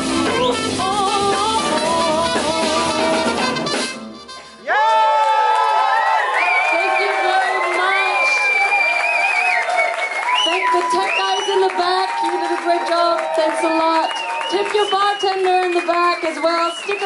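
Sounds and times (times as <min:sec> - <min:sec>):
live band with singer: 0:00.0 - 0:04.7, 0:10.0 - 0:17.0
crowd cheering: 0:04.4 - 0:17.0.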